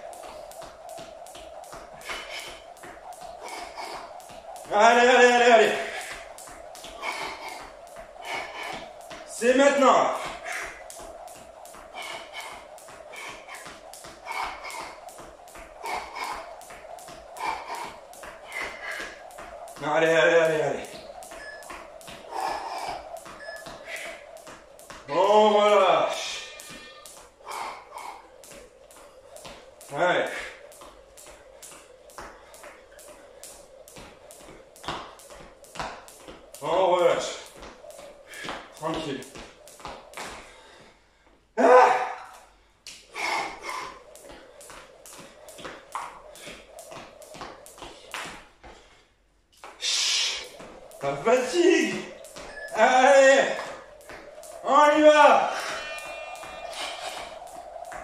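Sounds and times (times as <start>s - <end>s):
jump rope ticking on tile: 0.0s - 41.3s, 42.1s - 48.9s, 49.6s - 58.0s.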